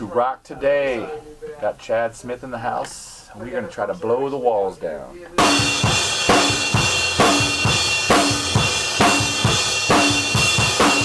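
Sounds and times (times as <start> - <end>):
cymbals washing: 5.4 - 11.0.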